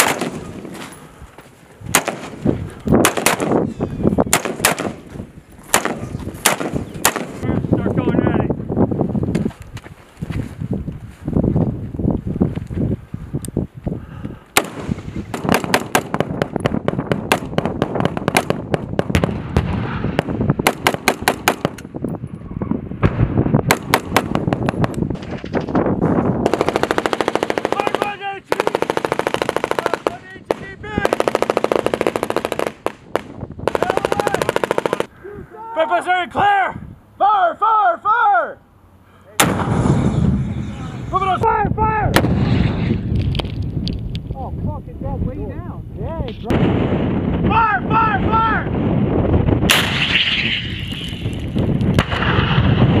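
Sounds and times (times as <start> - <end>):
loud gun blast: 0.0 - 0.5, 1.9 - 2.4, 3.0 - 3.6, 4.3 - 5.0, 5.7 - 7.5, 14.6 - 21.8, 39.4 - 41.0, 42.1 - 43.1, 46.5 - 47.4, 49.6 - 51.3, 52.0 - 53.0
sharp crack: 0.0 - 0.9, 1.9 - 2.4, 3.0 - 3.6, 4.3 - 7.5, 14.6 - 21.9, 39.4 - 40.9, 49.6 - 53.0
machine gun automatic bursts: 26.5 - 28.0
rumbling echo: 39.4 - 43.7.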